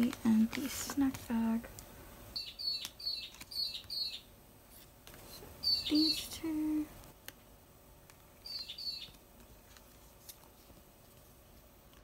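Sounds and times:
small bird chirping: 0:02.4 - 0:04.3, 0:05.6 - 0:06.5, 0:08.4 - 0:09.2.

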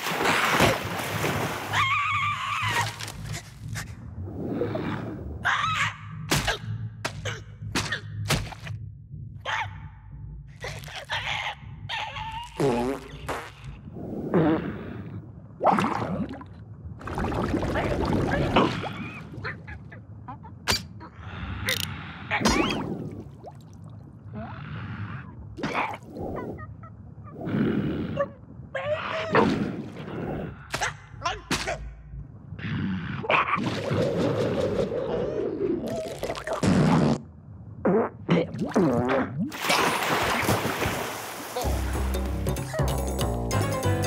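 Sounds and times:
cartoon character squawks and grunts: 0:10.6 - 0:12.8.

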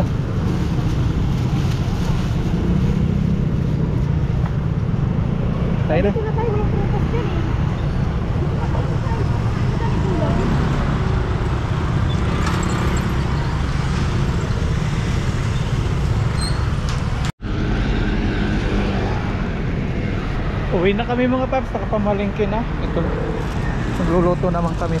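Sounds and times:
motor scooters passing: 0:05.0 - 0:20.7.

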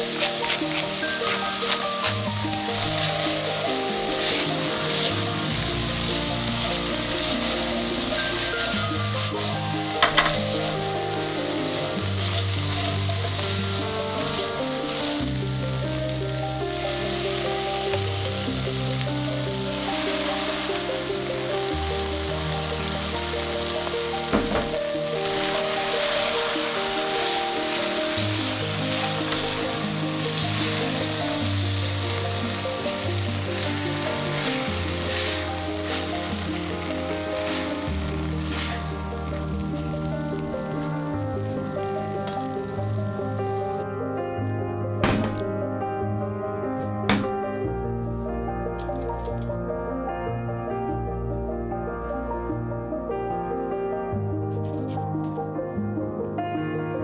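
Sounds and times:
spatula stirring in pan: 0:00.0 - 0:15.3, 0:25.2 - 0:38.9
chickpeas sizzling in oil: 0:00.0 - 0:43.8.

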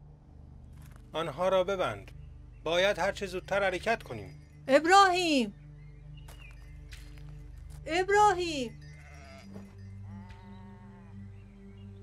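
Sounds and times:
sheep bleating: 0:08.9 - 0:11.1.

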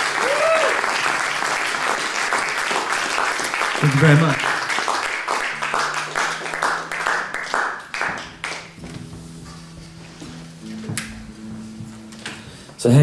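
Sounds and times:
audience applause: 0:00.0 - 0:08.8
guitar being tuned: 0:05.3 - 0:13.0.

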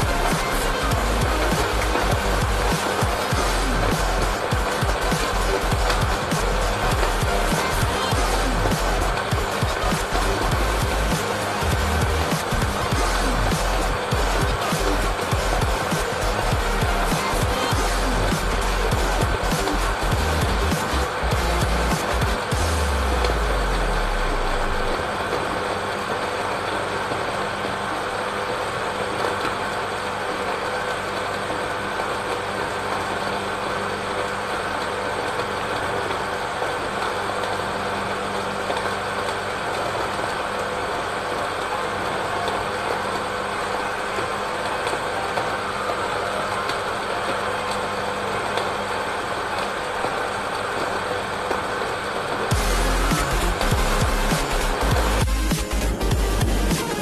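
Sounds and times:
blender motor running: 0:00.0 - 0:25.4, 0:52.4 - 0:57.0.

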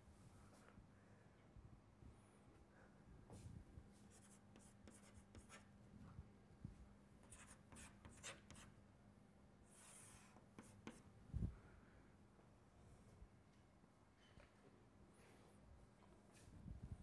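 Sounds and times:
chalk scratching on chalkboard: 0:04.1 - 0:05.7, 0:07.2 - 0:08.7, 0:09.7 - 0:11.0.

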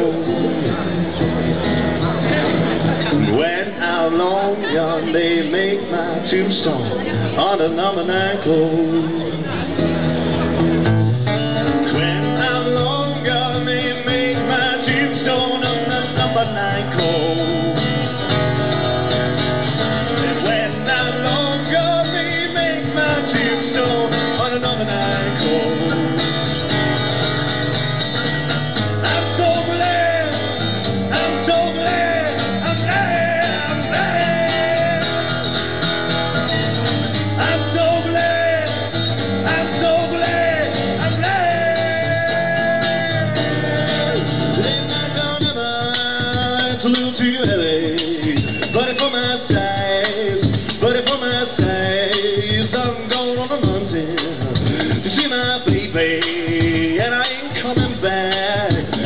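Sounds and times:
acoustic guitar: 0:00.0 - 0:59.0
man singing long held notes: 0:37.4 - 0:59.0.

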